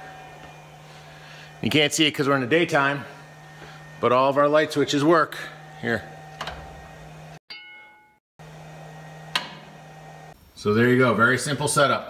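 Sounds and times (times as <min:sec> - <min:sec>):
bell-like ding: 0:07.5 - 0:08.2.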